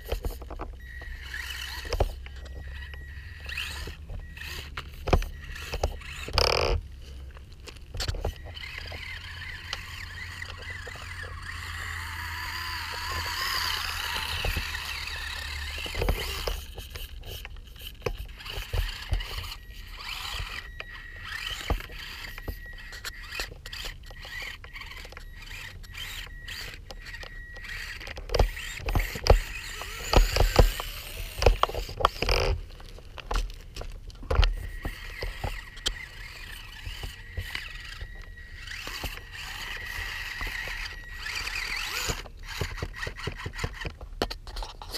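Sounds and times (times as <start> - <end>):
small electric motor whining: 0.0 - 44.9.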